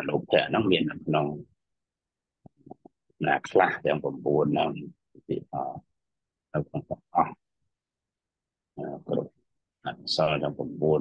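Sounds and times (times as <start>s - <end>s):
man speaking: 0.0s - 1.5s, 3.2s - 5.9s, 6.6s - 7.4s, 8.8s - 11.0s.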